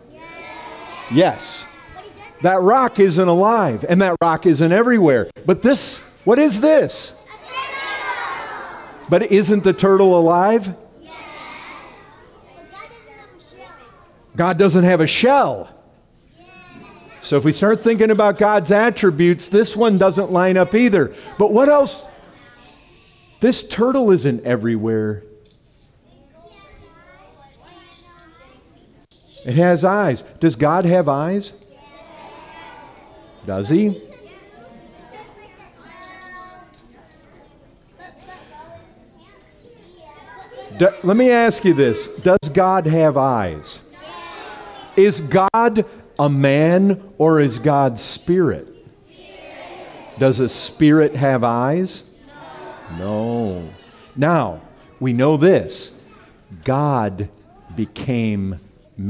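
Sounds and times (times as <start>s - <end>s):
children calling out: 0.0s - 3.8s, 7.2s - 14.3s, 16.3s - 17.4s, 19.9s - 23.4s, 31.6s - 42.3s, 43.1s - 46.3s, 48.7s - 56.6s
man speaking loudly: 1.1s - 1.8s, 2.4s - 7.2s, 9.1s - 10.9s, 14.3s - 15.8s, 17.2s - 22.2s, 23.4s - 25.3s, 29.4s - 31.6s, 33.4s - 34.0s, 40.7s - 43.8s, 44.9s - 48.7s, 50.2s - 52.1s, 52.9s - 59.0s.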